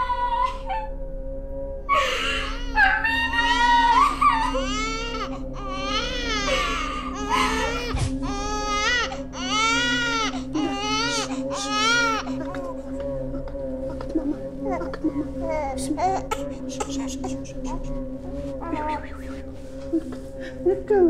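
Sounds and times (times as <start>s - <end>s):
steady low hum: 0.0s - 21.0s
baby crying: 1.9s - 12.8s, 14.6s - 18.0s, 18.6s - 19.3s.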